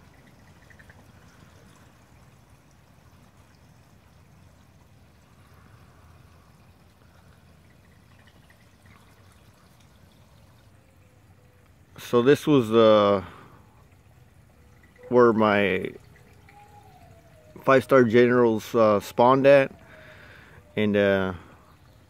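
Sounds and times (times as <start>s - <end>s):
faint trickle of water: 0.0s - 22.0s.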